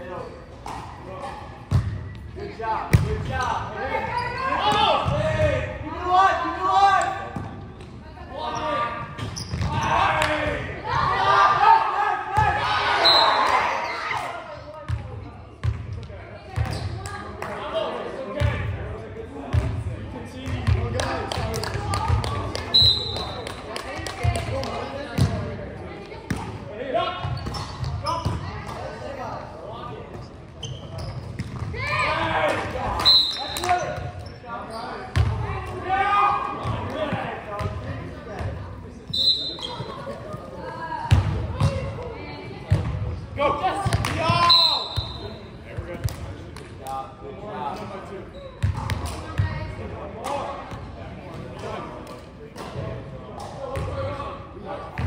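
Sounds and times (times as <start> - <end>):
players calling and shouting: 0.0 - 55.0
high shoe squeaks: 8.5 - 10.0, 30.6 - 31.4, 39.1 - 40.0, 48.3 - 48.7.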